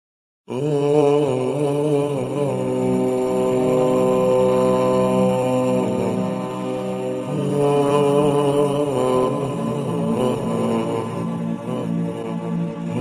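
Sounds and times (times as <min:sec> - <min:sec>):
person chanting in long notes: 0:00.5 - 0:13.0.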